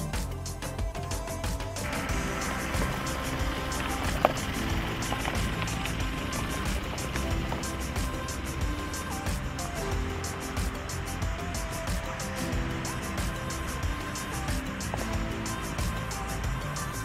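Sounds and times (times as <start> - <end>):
background music with steady beat: 0.0 - 17.0
vehicle rolling on gravel: 1.8 - 9.8.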